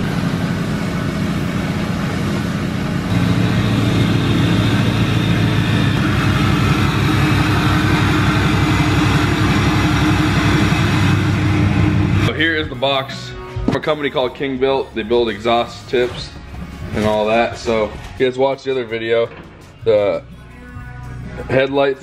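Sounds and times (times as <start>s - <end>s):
diesel truck engine idling: 0.0s - 17.9s.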